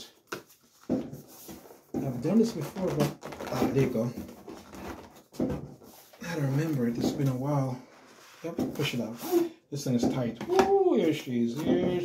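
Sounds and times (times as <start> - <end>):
cardboard rubbing and scraping: 0.7 - 7.4.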